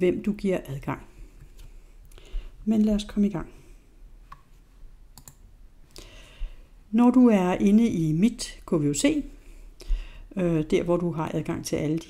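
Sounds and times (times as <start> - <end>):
faint computer clicks: 5.2 - 5.4.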